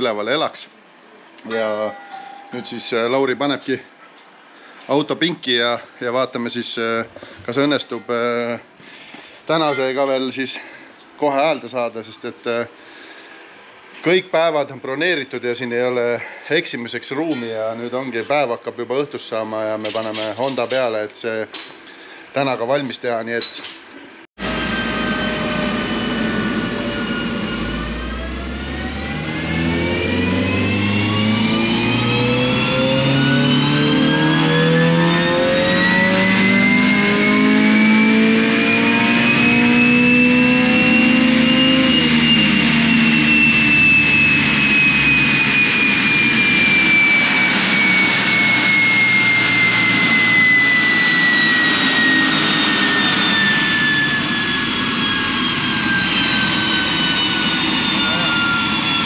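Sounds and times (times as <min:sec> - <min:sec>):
high whine: 0:00.0 - 0:23.6, 0:24.4 - 0:59.0
car engine revving: 0:24.4 - 0:59.0.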